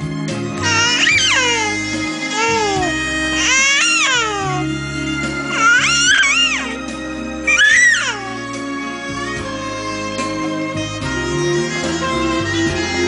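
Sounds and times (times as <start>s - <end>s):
background music: 0.0s - 13.0s
baby cooing: 0.6s - 4.7s, 5.5s - 6.8s, 7.5s - 8.4s.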